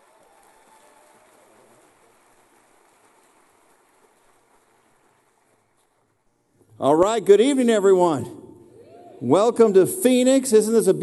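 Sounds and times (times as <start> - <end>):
faint audience applause: 0.0 - 6.3.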